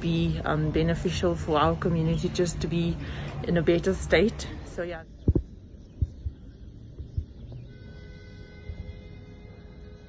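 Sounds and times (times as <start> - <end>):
dull low thumps: 5.1 - 9.3.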